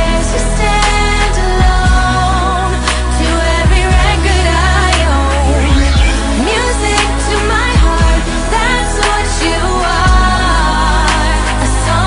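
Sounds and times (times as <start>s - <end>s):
synth beat with heavy bass: 0.0s - 12.0s
woman singing: 0.0s - 12.0s.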